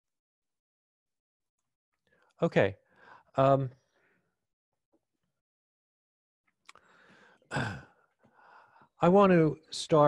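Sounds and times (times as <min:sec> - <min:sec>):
man speaking: 0:02.4 - 0:02.8
man sighing: 0:07.2 - 0:08.0.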